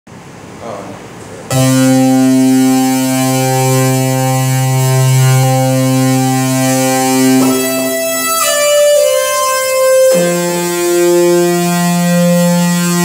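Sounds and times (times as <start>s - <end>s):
electronic keyboard chord: 1.5s - 13.0s.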